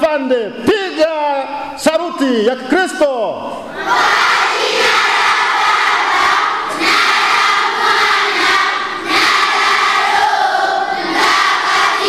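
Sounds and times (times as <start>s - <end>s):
children shouting in unison: 3.7s - 12.0s.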